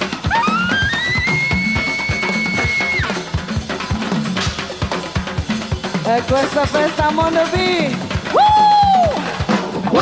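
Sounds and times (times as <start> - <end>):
drum kit beat: 0.0 - 10.0.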